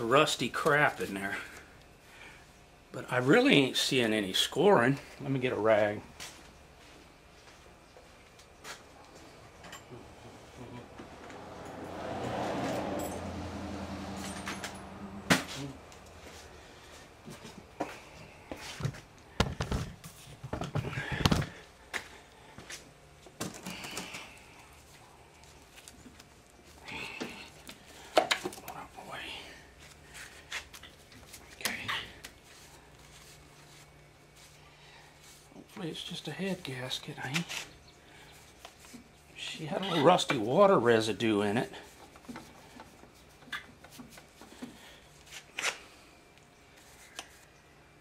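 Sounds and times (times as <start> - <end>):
low hum: 6.5 - 19.4
tools and parts clunking: 9.6 - 10.0, 14.2 - 15.6.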